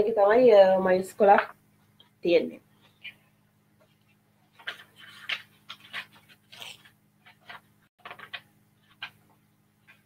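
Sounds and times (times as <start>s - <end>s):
faint electrical hum: 0.0s - 10.0s
paper rustling: 3.8s - 10.0s.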